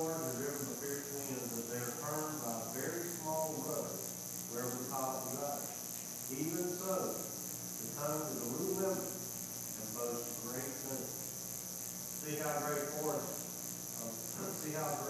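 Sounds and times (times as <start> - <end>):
man reading aloud: 0.0 - 5.6, 6.3 - 7.2, 7.8 - 9.1, 9.8 - 11.1, 12.2 - 13.4, 14.0 - 15.0
pulsing high-pitched hiss: 0.0 - 15.0.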